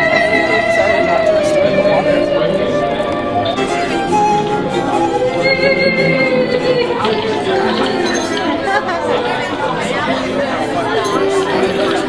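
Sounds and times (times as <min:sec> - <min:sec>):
voices talking over one another: 0:00.0 - 0:12.0
glasses clinking: 0:06.4 - 0:08.8, 0:10.9 - 0:12.0.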